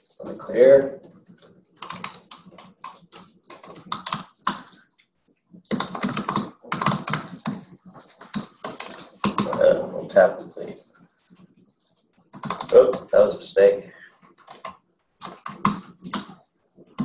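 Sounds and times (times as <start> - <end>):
typing on computer keyboard: 0.0 - 5.0, 5.6 - 13.1, 14.1 - 17.0.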